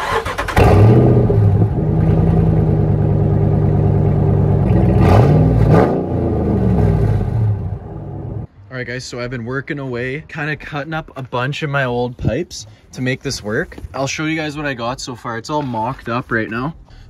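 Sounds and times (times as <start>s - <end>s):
engine revving: 0.0s - 8.4s
truck engine cranking and idling: 0.0s - 8.5s.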